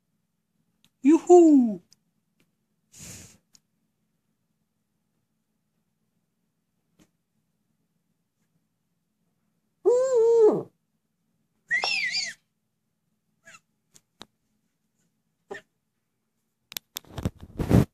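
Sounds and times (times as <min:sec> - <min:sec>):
owl high squealing call: 0:11.7 - 0:12.4
owl wavering call: 0:11.7 - 0:12.4.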